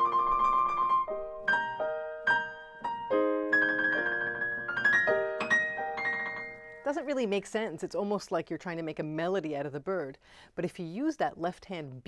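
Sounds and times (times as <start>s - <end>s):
grand piano playing: 0.0s - 7.2s.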